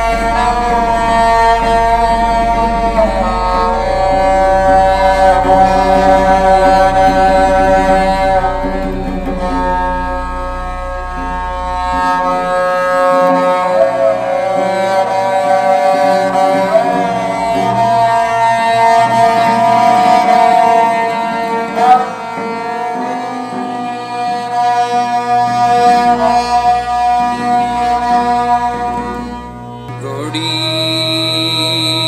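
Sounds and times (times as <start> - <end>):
steady drone: 0.0 - 31.8
bowed strings slow melody: 0.0 - 32.0.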